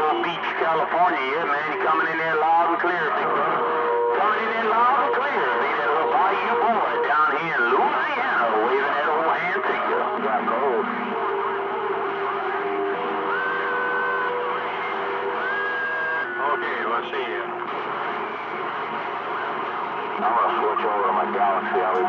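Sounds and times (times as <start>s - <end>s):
garbled distant radio voices: 0.0s - 22.0s
radio static hiss: 0.0s - 22.0s
steady whistling tones: 10.9s - 21.5s.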